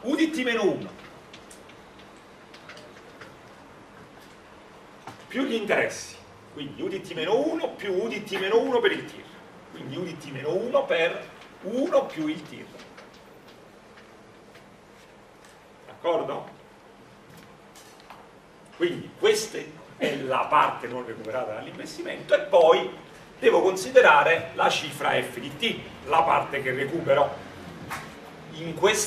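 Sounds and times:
low room hum: 0.0 - 29.0.

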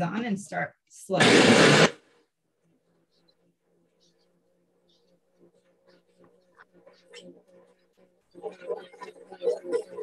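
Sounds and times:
blender whirring: 1.2 - 2.0.

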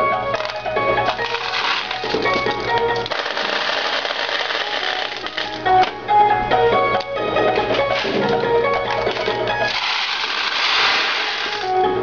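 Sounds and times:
pachinko machine rattling: 0.4 - 5.8.

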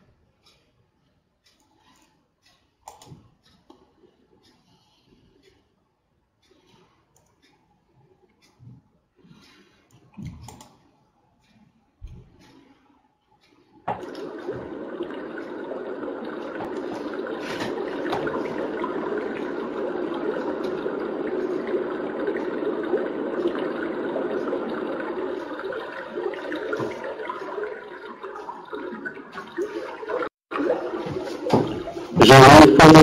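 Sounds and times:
running water rushing: 13.9 - 33.0.

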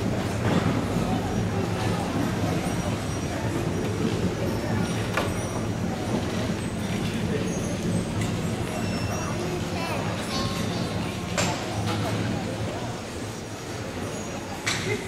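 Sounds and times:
carts rolling on wooden floor: 0.0 - 12.9
murmur of voices: 0.0 - 15.0.

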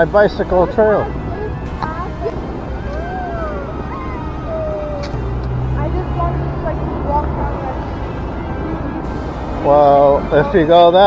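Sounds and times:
heavy vehicle low hum: 0.0 - 11.0
long sliding tones: 0.0 - 11.0
road traffic rumbling: 0.0 - 11.0.

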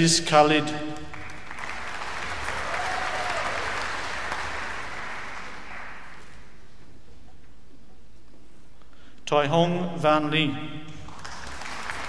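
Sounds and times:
audience applauding: 1.0 - 6.7, 11.1 - 12.0.

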